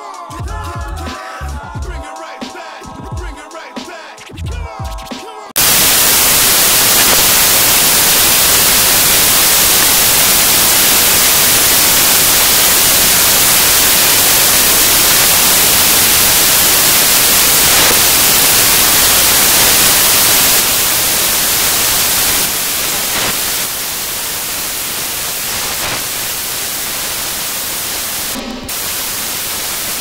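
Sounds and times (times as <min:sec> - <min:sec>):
white noise static hiss: 0:05.6 - 0:30.0.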